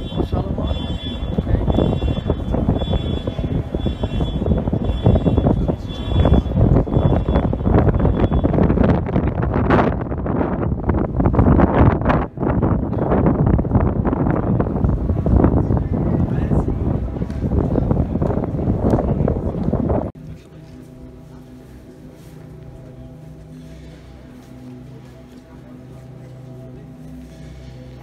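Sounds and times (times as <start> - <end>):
wind buffeting microphone: 0.0 - 20.2.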